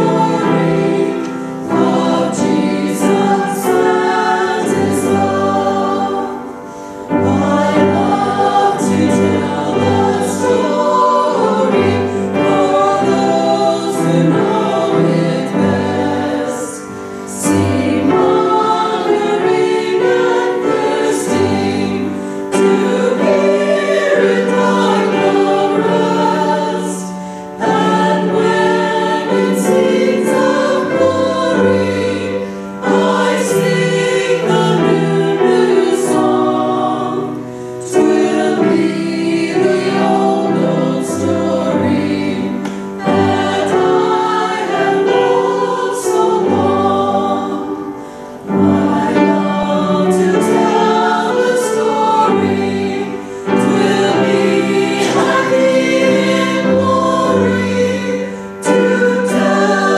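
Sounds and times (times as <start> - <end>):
church choir singing a hymn: 0.0 - 59.9.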